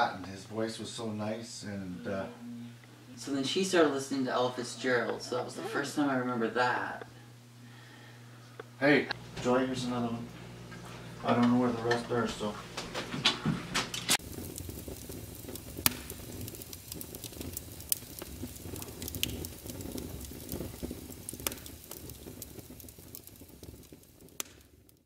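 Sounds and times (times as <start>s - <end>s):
wood fire crackling and popping: 3.2s - 25.0s.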